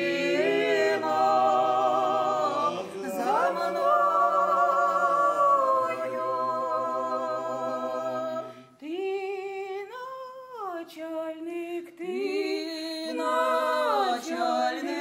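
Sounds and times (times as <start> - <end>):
mixed choir singing a cappella: 0.0 - 9.1, 12.0 - 15.0.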